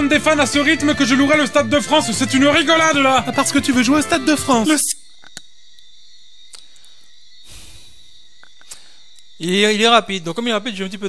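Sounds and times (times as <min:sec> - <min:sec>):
faint clicks: 0:06.5 - 0:07.2, 0:08.4 - 0:09.3.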